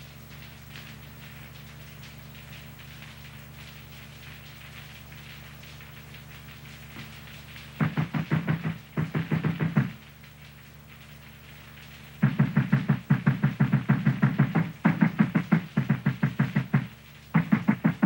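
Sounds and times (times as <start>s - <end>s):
pounding on wooden door: 7.8s - 10.0s, 12.2s - 18.0s.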